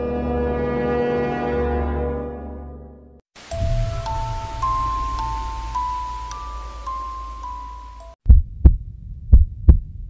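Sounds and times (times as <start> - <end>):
heartbeat thumps: 8.2 - 10.0.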